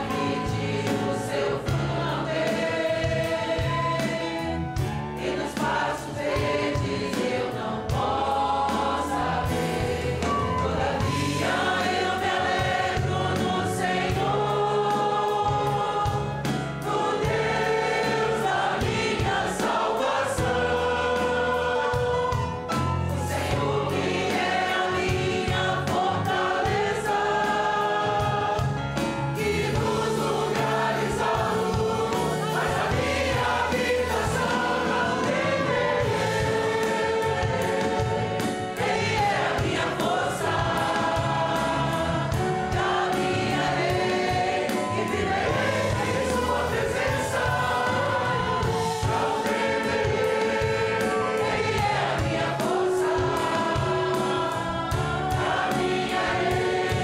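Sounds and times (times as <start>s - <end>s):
congregation singing a hymn: 0.0s - 57.0s
live band with rhythmic bass: 0.0s - 57.0s.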